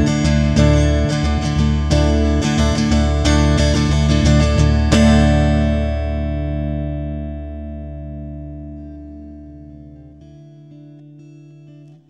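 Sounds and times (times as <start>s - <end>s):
bass: 0.0s - 12.0s
strummed guitar chord: 0.0s - 12.0s.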